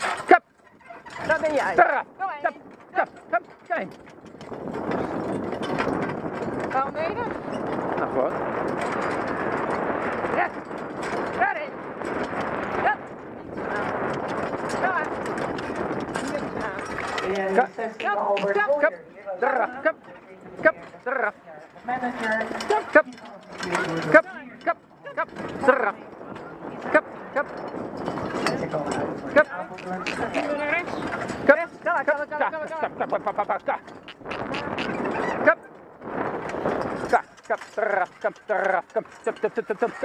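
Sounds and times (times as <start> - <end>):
driver calling to horse: 0.0 - 0.5, 1.3 - 4.0, 12.8 - 13.1, 17.2 - 21.4, 22.6 - 26.0, 31.4 - 34.7, 37.1 - 40.0
rushing noise of moving carriage: 0.0 - 40.0.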